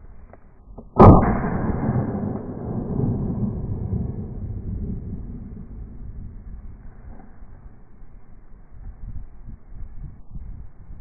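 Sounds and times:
wind buffeting microphone: 0:01.7 - 0:11.0.

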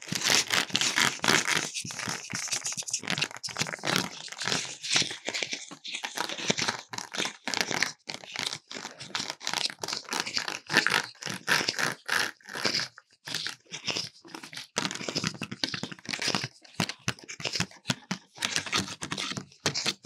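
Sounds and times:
mask crinkling: 0:00.0 - 0:12.0
fingers scratching pumpkin: 0:00.0 - 0:20.0.

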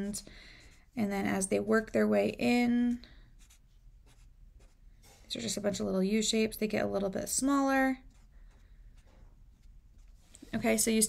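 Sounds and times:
marker scratching on paper: 0:03.4 - 0:05.3, 0:08.0 - 0:10.9.

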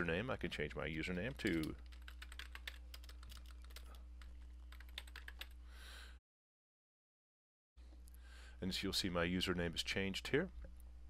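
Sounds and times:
low electrical hum: 0:00.0 - 0:06.2, 0:07.8 - 0:11.0.

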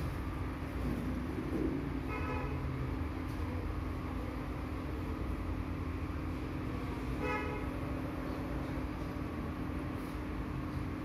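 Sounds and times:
low room hum and rumble: 0:00.0 - 0:11.0
vehicle horn toot: 0:02.1 - 0:02.6, 0:07.2 - 0:07.8.

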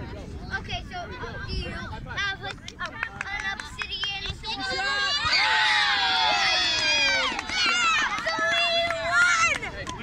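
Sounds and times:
children shouting: 0:04.6 - 0:09.8.

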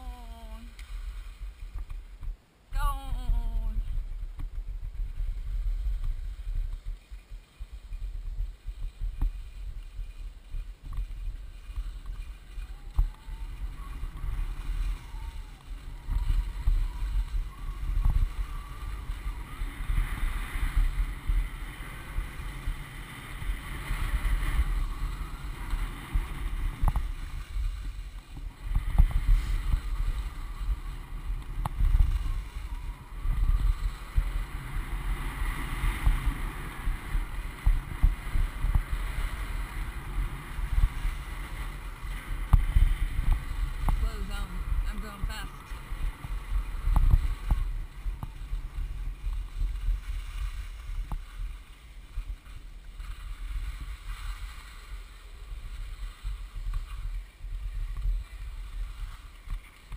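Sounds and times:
skis sliding on packed snow: 0:00.0 - 0:59.9
wind buffeting microphone: 0:00.0 - 0:59.9.

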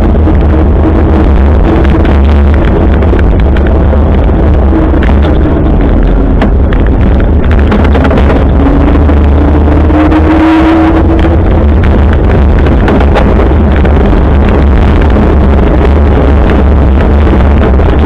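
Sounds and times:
bicycle rattles and knocks: 0:00.0 - 0:10.2, 0:11.0 - 0:18.0
rising hum: 0:00.0 - 0:18.0
wind buffeting microphone: 0:00.0 - 0:18.0.

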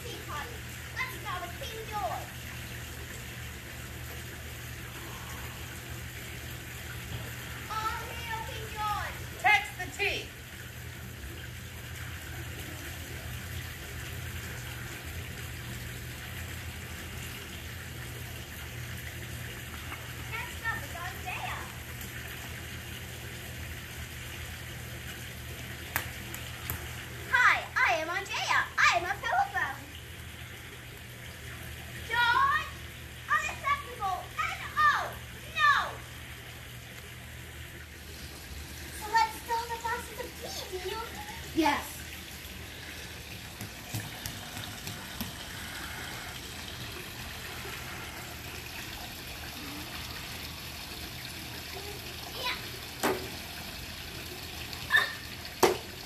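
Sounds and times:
child speaking: 0:00.0 - 0:02.4, 0:07.7 - 0:10.3, 0:20.3 - 0:21.8, 0:27.3 - 0:29.9, 0:32.1 - 0:36.1, 0:38.9 - 0:42.0, 0:51.7 - 0:52.8
steady hiss: 0:44.4 - 0:50.8.

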